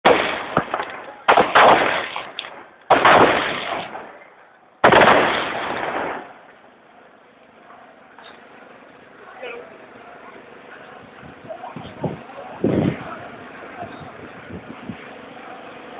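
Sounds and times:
loud gunshots echoing: 0:00.0 - 0:04.2, 0:04.8 - 0:06.4.

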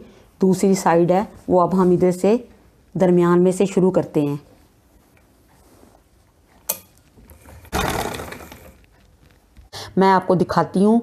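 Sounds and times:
sewing machine clatter: 0:07.4 - 0:08.8.

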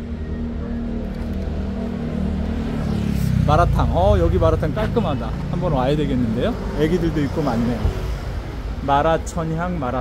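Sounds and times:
vehicle engine humming: 0:00.0 - 0:10.0.

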